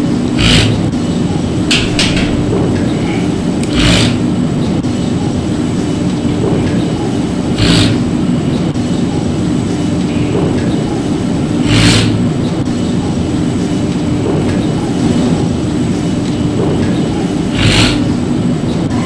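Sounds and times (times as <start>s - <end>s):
elevator rumble and hum: 0.0s - 19.0s.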